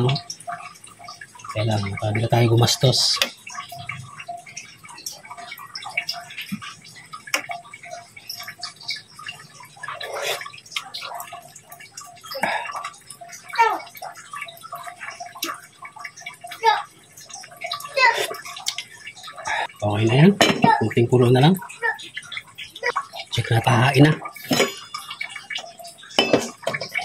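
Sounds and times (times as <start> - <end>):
pot boiling and bubbling: 0.0 - 27.0
metal spoon clinking on pot: 24.3 - 27.0.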